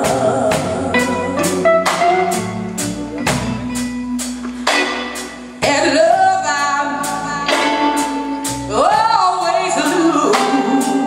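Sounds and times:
woman singing: 0.0s - 1.6s, 5.6s - 11.0s
blues band playing: 0.0s - 11.0s
drums striking: 0.0s - 11.0s.

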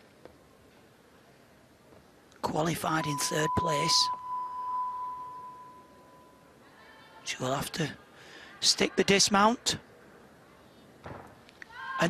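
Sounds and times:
steady electronic beep: 3.0s - 6.5s.

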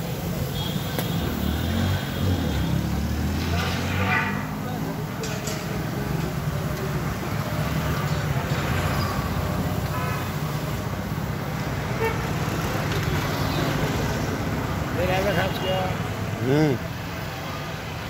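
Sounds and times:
people talking: 15.0s - 16.8s.

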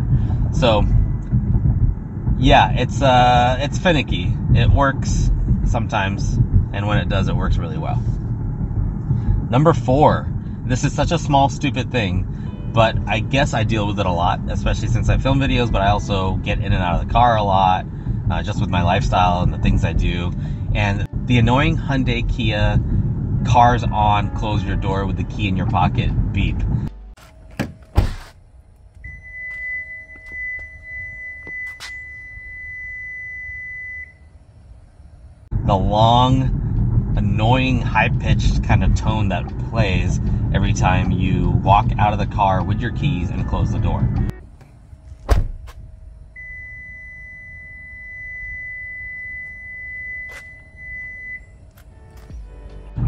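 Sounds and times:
car door shutting: 27.2s - 28.4s, 44.5s - 46.8s, 49.3s - 52.4s
long high-pitched warning tone: 29.0s - 34.7s, 46.2s - 52.5s.

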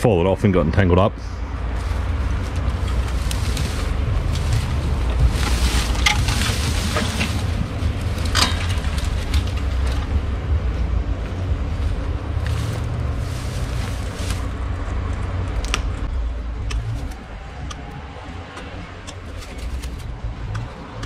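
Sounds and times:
wind buffeting microphone: 1.4s - 21.0s
rustles and clicks: 1.7s - 21.0s.

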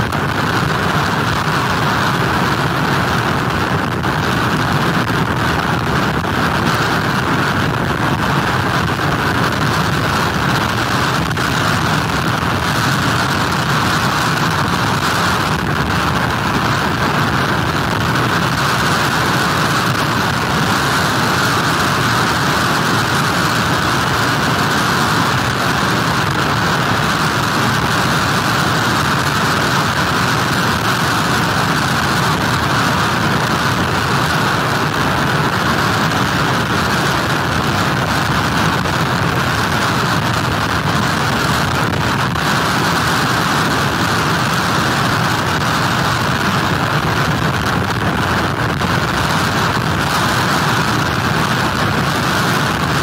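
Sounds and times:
driving rain: 0.0s - 53.0s
heavy surf: 0.0s - 53.0s
wind: 0.0s - 53.0s.

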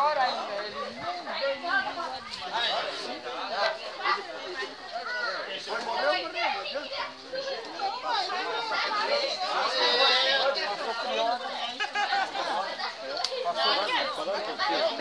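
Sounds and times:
overlapping conversation: 0.0s - 15.0s.

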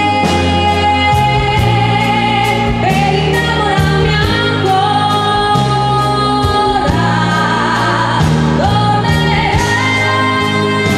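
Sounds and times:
bass: 0.0s - 10.9s
drums: 0.0s - 10.9s
keyboards: 0.0s - 10.9s
woman singing through microphone: 0.0s - 10.9s.

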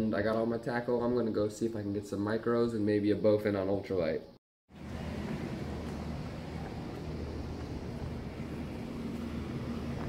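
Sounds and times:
steady low mechanical hum: 4.7s - 10.0s.

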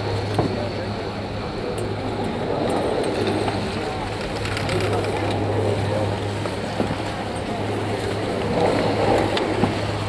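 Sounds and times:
chairlift machinery humming: 0.0s - 10.0s.

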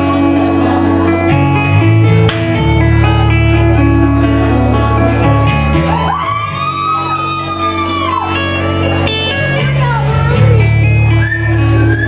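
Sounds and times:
electric guitar sustained notes: 0.0s - 12.0s
steady bass line: 0.0s - 12.0s.

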